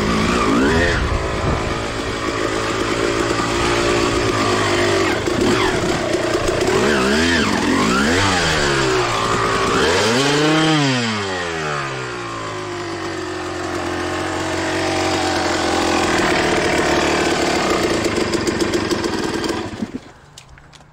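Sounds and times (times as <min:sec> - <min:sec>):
dirt bike engine revving: 0:00.0 - 0:20.1.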